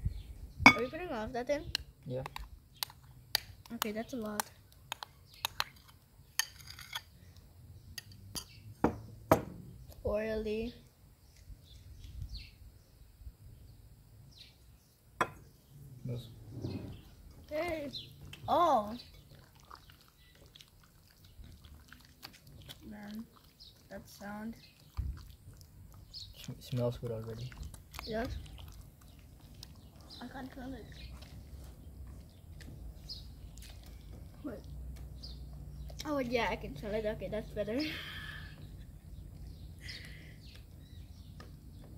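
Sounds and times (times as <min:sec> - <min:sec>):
bird chirp: 0:00.0 - 0:20.6, 0:25.9 - 0:41.9
wet squishes of mixing: 0:18.3 - 0:36.1
bird chirps: 0:26.0 - 0:41.9.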